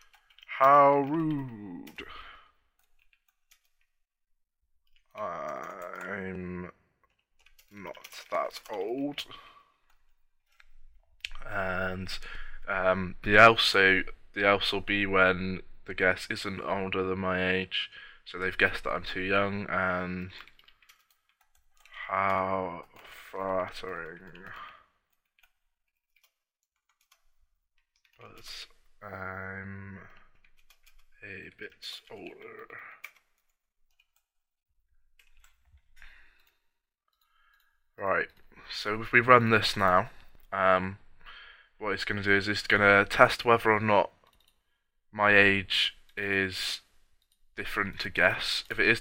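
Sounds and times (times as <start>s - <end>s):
computer keyboard keystrokes: 0.0s - 2.1s
person speaking: 0.0s - 2.9s, 4.9s - 6.8s, 7.5s - 9.8s, 10.6s - 20.6s, 21.8s - 25.0s, 28.1s - 33.3s, 38.0s - 44.2s, 45.1s - 47.0s, 47.6s - 49.0s
breathy noise: 5.0s - 6.6s, 35.2s - 38.8s
keyboard typing clicks: 44.3s - 44.6s.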